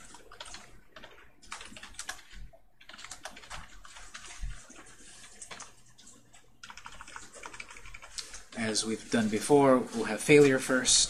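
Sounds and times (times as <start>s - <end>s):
typing on computer keyboard: 0.0s - 8.6s.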